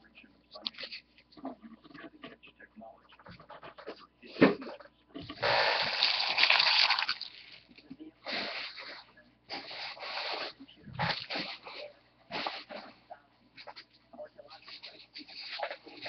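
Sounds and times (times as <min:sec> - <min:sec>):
foil wrappers crinkling: 0:05.7 - 0:07.7.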